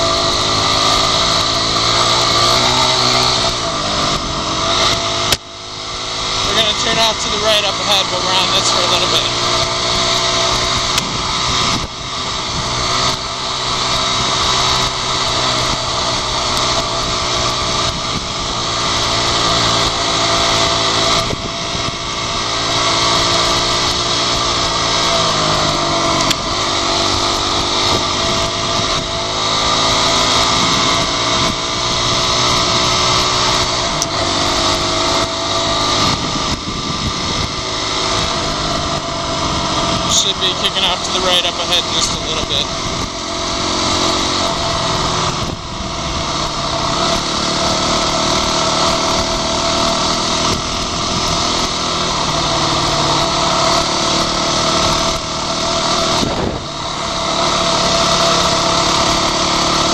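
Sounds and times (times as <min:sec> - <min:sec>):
dirt bike engine running: 0:00.0 - 0:59.9.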